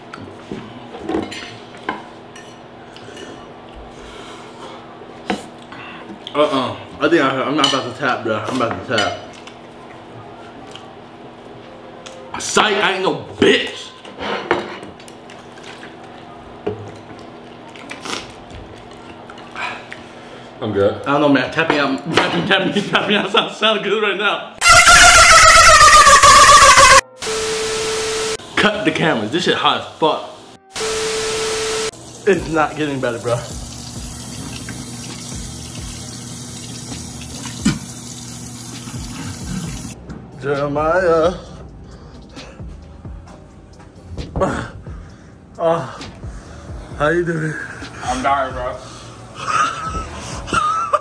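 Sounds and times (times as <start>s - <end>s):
faucet water running into sink: 31.9s - 40.0s.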